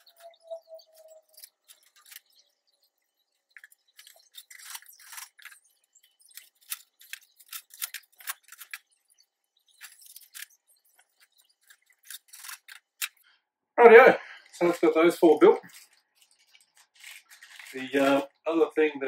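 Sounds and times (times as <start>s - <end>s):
metal shelf parts clicking: 6.3s - 8.8s.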